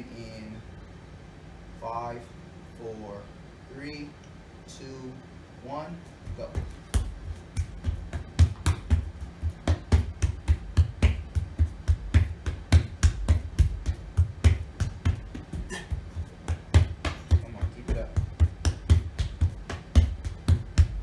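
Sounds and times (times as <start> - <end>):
hand slaps on rubber floor: 6.3 - 21.0.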